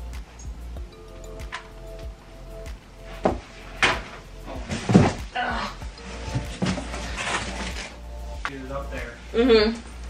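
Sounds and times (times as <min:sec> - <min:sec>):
soft background music: 0:00.0 - 0:10.0
objects knocking on shelving: 0:03.2 - 0:05.3.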